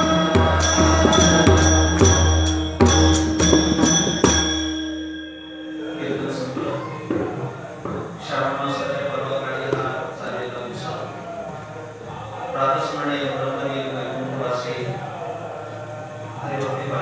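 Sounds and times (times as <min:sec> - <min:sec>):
drum strokes: 0:00.0 - 0:08.3
hand cymbals: 0:00.0 - 0:08.9.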